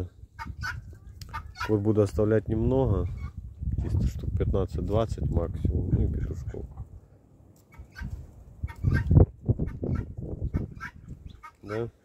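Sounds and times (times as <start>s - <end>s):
chickens clucking: 0.4s - 1.9s, 7.6s - 11.9s.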